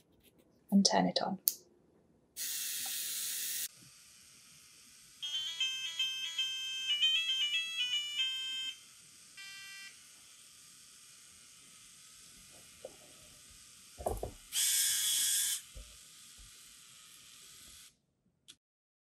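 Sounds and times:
electronic buzzer beeps: 2.4s - 3.7s, 5.2s - 8.8s, 9.4s - 10.0s, 14.6s - 15.6s
low knocks: 14.0s - 14.4s.

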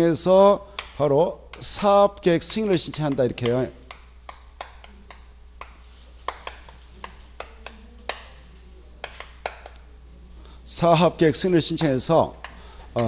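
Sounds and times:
chalk tapping on chalkboard: 0.7s - 1.8s, 2.4s - 9.9s, 11.4s - 13.0s.

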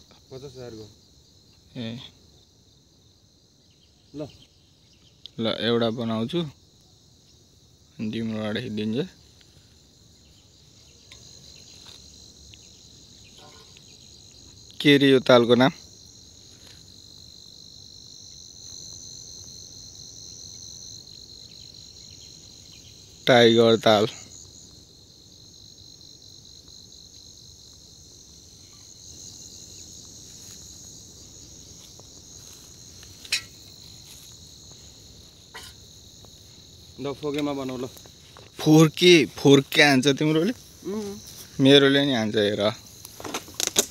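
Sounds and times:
crickets chirping: 0.0s - 43.9s
high-pitched insect chorus: 0.0s - 43.9s.

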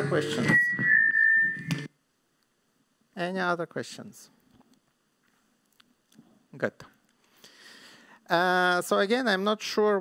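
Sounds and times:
high-pitched feedback ring: 0.0s - 1.9s.

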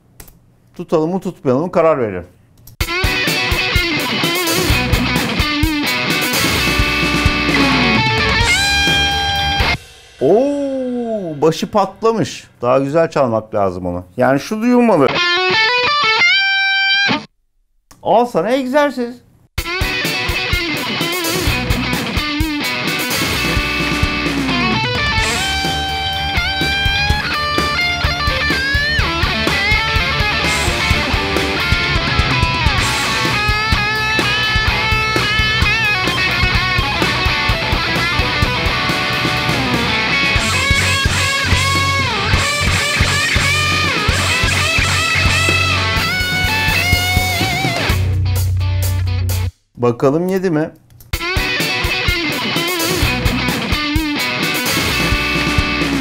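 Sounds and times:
drum backing track: 2.8s - 12.4s, 19.6s - 49.6s, 51.0s - 56.0s
electric guitar solo: 2.9s - 9.9s, 15.1s - 17.3s, 19.7s - 49.2s, 51.2s - 56.0s.

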